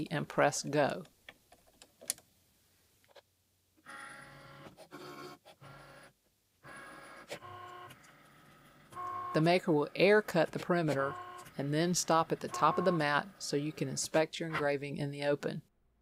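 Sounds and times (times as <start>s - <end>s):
carriage motors whirring: 6.7s - 13.2s.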